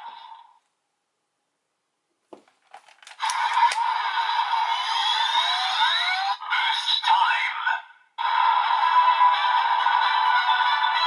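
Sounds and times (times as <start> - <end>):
plastic clicks: 2.4 - 3.8.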